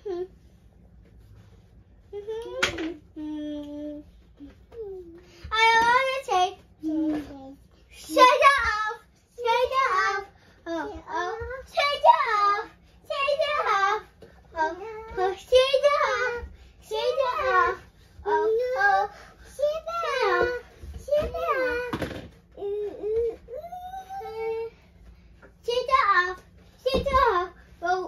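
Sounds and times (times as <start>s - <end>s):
girl singing unaccompanied: 2.1s - 24.8s.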